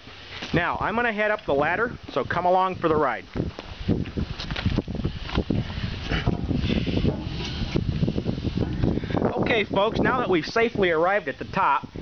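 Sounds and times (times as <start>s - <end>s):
wind noise: 0.0s - 12.0s.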